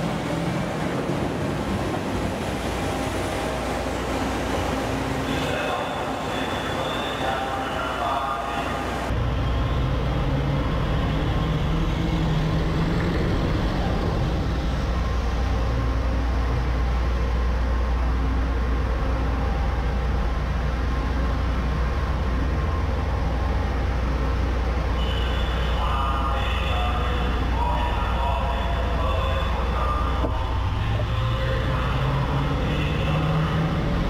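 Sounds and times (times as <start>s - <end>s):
boat engine droning: 0.0s - 34.0s
churning water: 0.0s - 34.0s.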